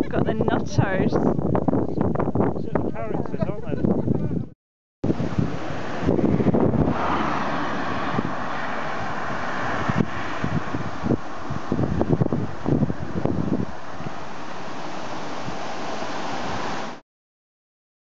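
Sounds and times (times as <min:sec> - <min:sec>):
wind on microphone: 0:00.0 - 0:17.0
road traffic: 0:05.0 - 0:17.0.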